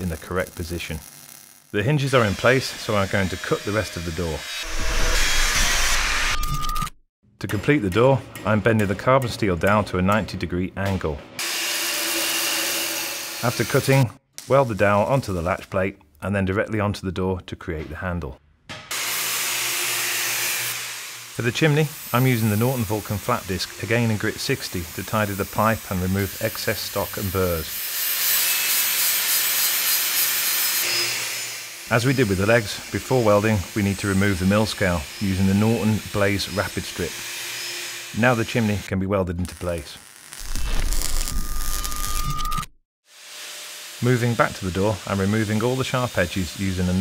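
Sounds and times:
welding arc crackling sizzle: 0.0s - 3.2s, 19.0s - 36.4s, 37.8s - 47.0s.

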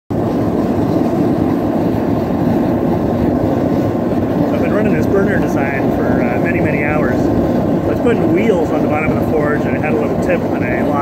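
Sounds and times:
gas forge burner roaring: 0.1s - 11.0s.

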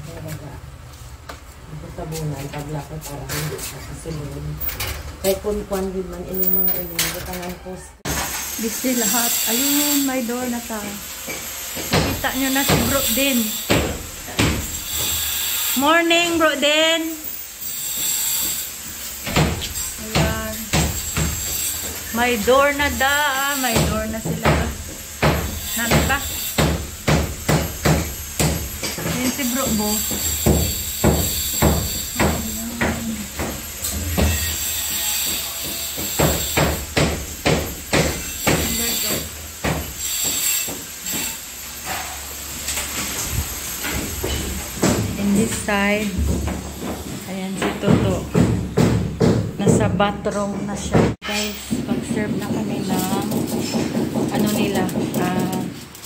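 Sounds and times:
hammer blows on masonry wall: 8.1s - 42.2s, 43.8s - 55.8s.

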